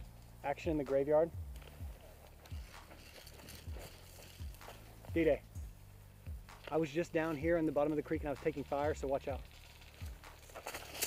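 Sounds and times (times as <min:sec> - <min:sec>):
low steady hum: 0:00.0 - 0:11.0
footsteps on dry ground: 0:00.7 - 0:11.0.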